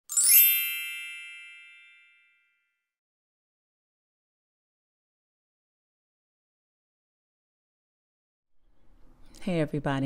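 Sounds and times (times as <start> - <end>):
bright metallic ding: 0.1 - 2.4.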